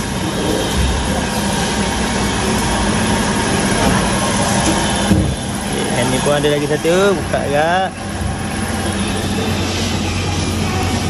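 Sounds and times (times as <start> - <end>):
machine humming and hissing: 0.0 - 11.0.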